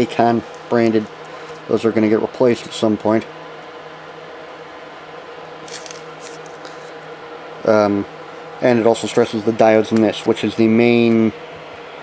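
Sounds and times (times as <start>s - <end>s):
faint hum and hiss: 0.0s - 12.0s.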